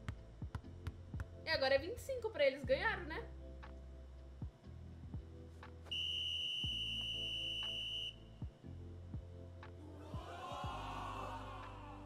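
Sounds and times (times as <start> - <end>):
background music: 0.0 - 12.0
referee's whistle long blast: 5.9 - 8.2.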